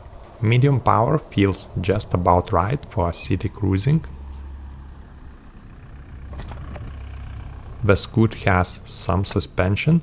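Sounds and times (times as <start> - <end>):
electric scooter rumbling on pavement: 0.0 - 9.7.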